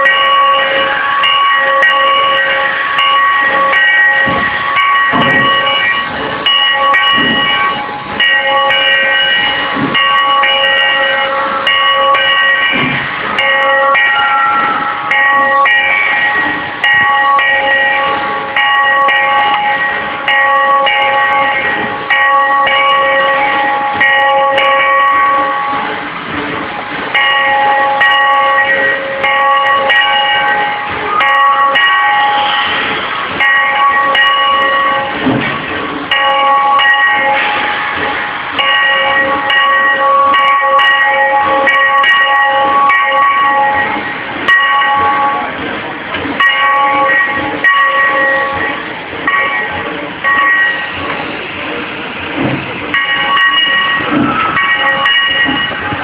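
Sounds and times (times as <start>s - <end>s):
steam locomotive bell ringing: 0.0s - 56.0s.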